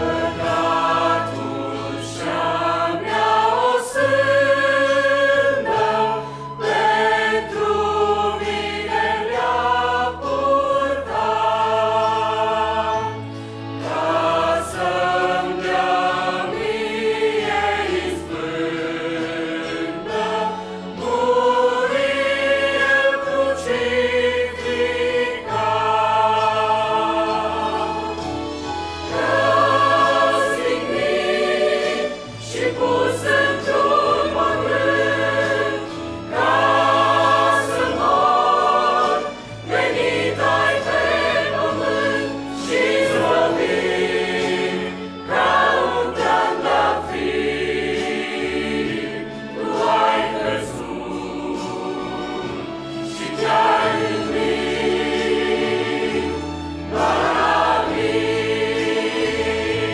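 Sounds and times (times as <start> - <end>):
choir singing a hymn: 0.0 - 59.9.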